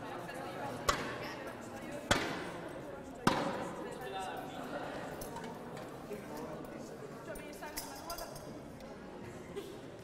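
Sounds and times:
murmur of voices: 0.0 - 10.0
sharp knocks with hall echo: 0.8 - 1.2, 2.1 - 2.6, 3.2 - 3.8.

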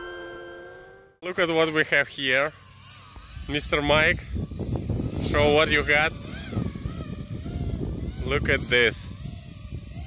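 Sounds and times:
drone motors whining: 0.0 - 10.0.

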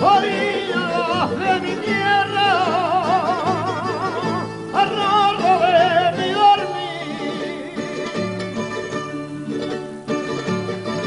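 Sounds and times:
solo voice singing with vibrato: 0.0 - 8.2
plucked guitars: 0.0 - 11.0.

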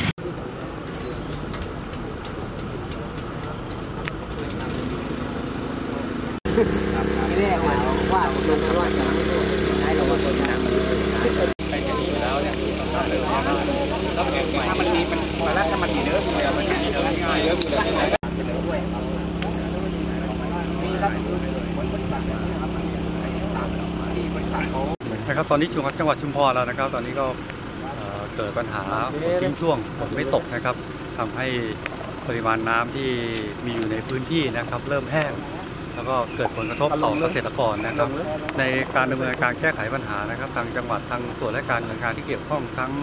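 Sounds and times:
engine running: 0.0 - 43.0
indistinct talk: 5.8 - 43.0.

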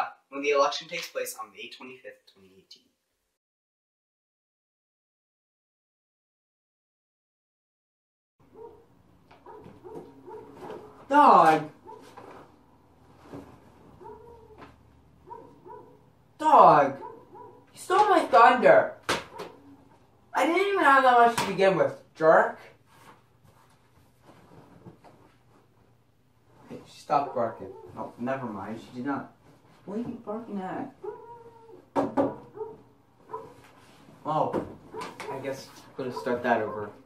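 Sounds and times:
dog barking faintly: 8.5 - 11.1, 11.8 - 12.2, 14.0 - 14.6, 15.2 - 16.0, 17.0 - 17.7, 27.1 - 28.2, 31.0 - 33.7, 34.9 - 37.0.

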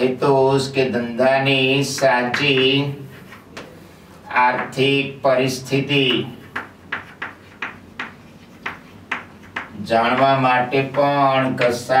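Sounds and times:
chalk tapping and scraping on blackboard: 1.8 - 3.8, 5.9 - 12.0.

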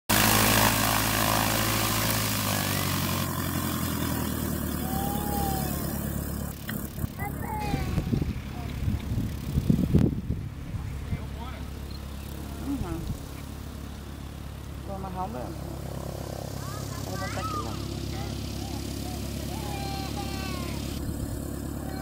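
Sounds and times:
propeller plane engine running: 0.1 - 22.0.

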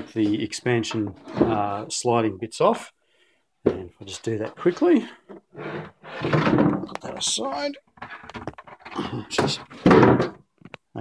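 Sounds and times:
loud wooden thud: 6.2 - 6.9, 9.4 - 10.4.

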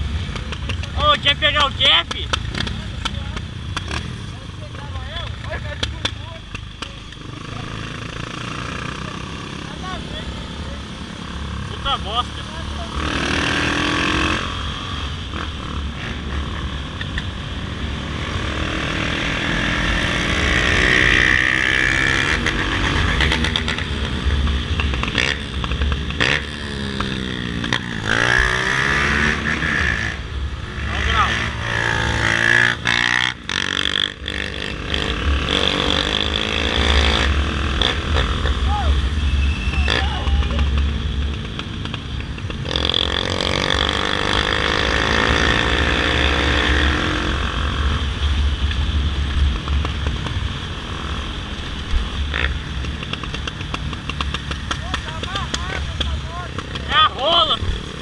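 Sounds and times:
motorcycle engine running: 18.3 - 58.0.

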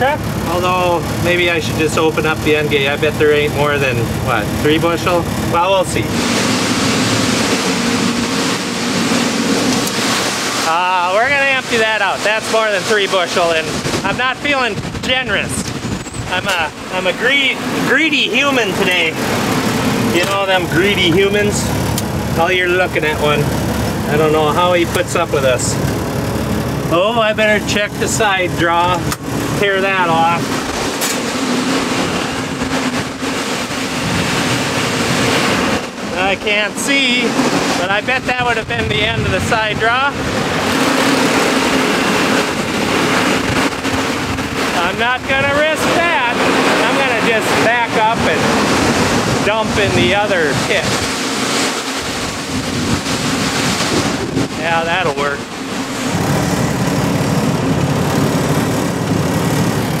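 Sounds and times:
truck engine running: 0.0 - 60.0.

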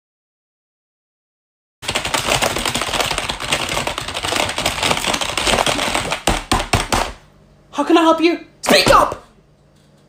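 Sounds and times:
rapid keyboard typing: 1.8 - 7.2.

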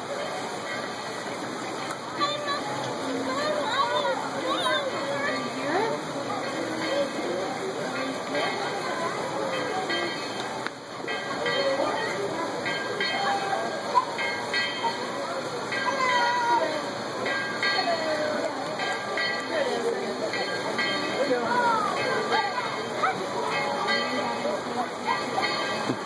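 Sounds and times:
people chattering: 0.0 - 26.0
steam train running: 0.0 - 26.0.

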